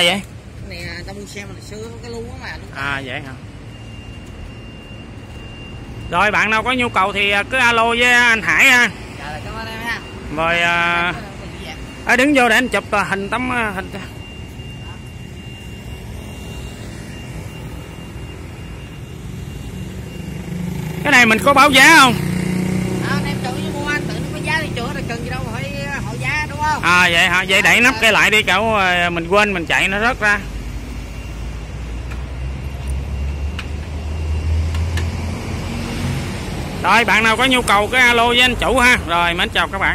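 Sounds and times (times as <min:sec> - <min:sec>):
faint high whine: 0:09.5 - 0:22.3.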